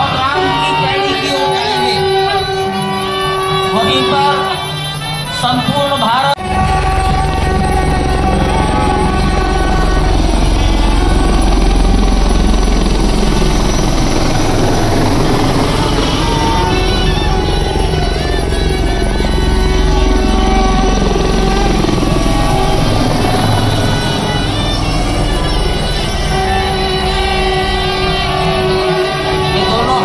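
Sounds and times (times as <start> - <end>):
helicopter rotor beat: 0.0 - 30.0
music: 0.0 - 30.0.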